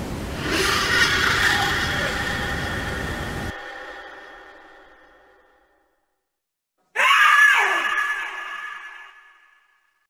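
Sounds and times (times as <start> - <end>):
horror scream with echo: 0.3 - 6.0, 7.0 - 9.9.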